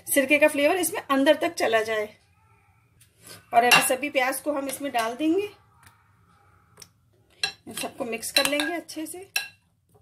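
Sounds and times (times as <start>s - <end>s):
woman speaking: 0.0s - 2.2s, 3.5s - 5.6s, 7.6s - 9.4s
onions clinking into glass bowl: 7.4s - 9.6s.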